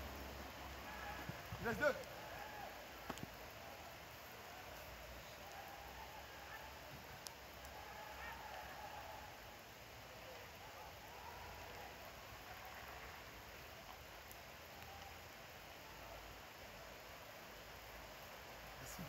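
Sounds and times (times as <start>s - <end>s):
faint distant voices: 0.0s - 19.0s.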